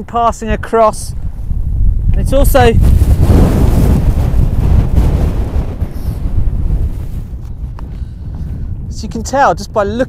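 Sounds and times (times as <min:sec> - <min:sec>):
wind gust buffeting microphone: 0:00.0 - 0:10.0.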